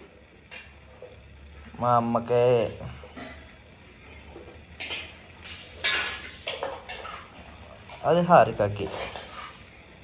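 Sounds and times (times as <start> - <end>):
metal spoon clinking on pot: 4.8 - 7.3.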